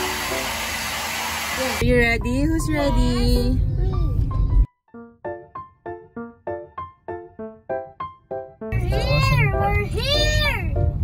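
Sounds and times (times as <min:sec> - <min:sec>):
background music: 0:01.8 - 0:11.0.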